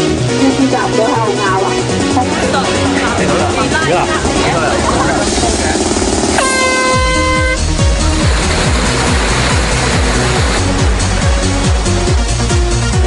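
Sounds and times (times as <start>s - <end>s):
air horn blast: 6.4s - 9.0s
electronic dance music: 6.4s - 13.0s.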